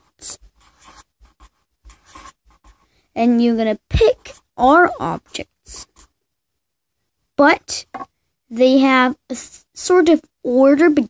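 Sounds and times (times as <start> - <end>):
pen scratching on paper: 0.0 - 2.9.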